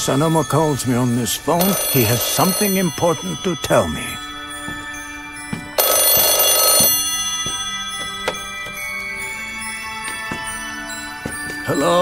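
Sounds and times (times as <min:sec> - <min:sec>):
soft background music: 0:00.0 - 0:12.0
telephone bell ringing: 0:01.4 - 0:10.0.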